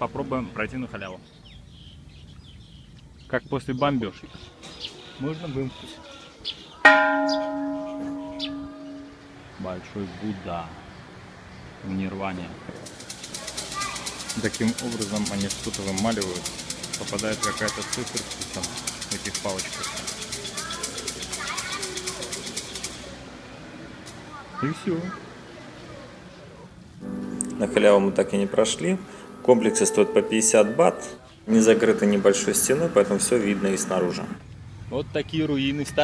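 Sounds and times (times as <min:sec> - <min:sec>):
temple bell ringing: 0:06.9 - 0:09.6, 0:27.0 - 0:34.4.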